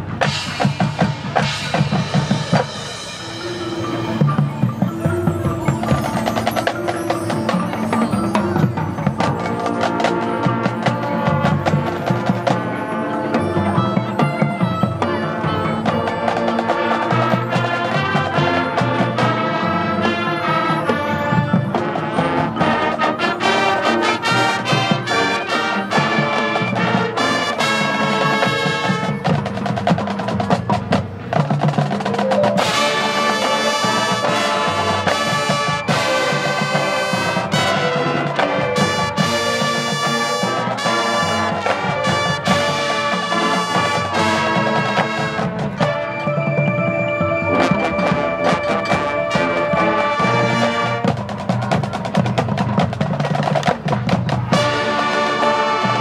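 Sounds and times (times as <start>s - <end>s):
mallet percussion: 0.0s - 56.0s
marching band playing: 0.0s - 56.0s.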